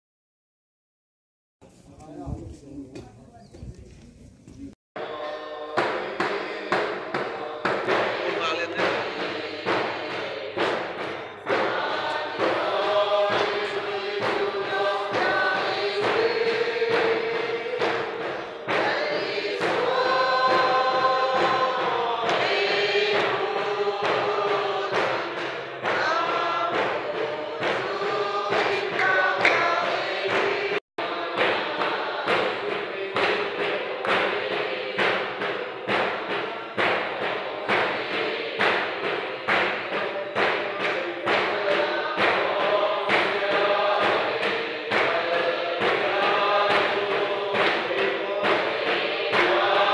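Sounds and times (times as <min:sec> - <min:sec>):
congregation singing a hymn: 0:05.0 - 0:49.9
steady thumping beat: 0:05.0 - 0:49.9.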